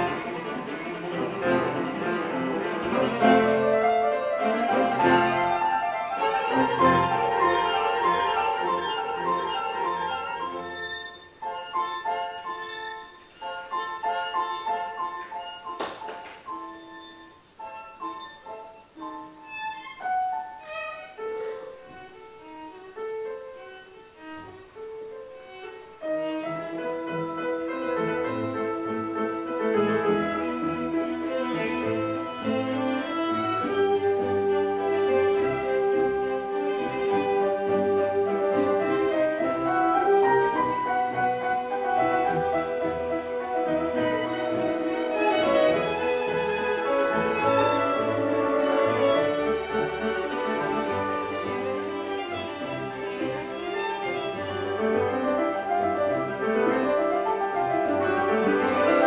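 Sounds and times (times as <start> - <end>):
cello: 0.0 - 59.0
classical orchestra playing: 0.0 - 59.0
piano: 0.0 - 59.0
violin: 0.0 - 59.0.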